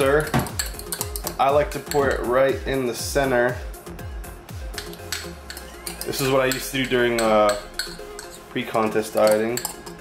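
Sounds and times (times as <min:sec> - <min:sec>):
background music: 0:00.0 - 0:10.0
metal utensil scraping a ceramic mug: 0:04.8 - 0:10.0.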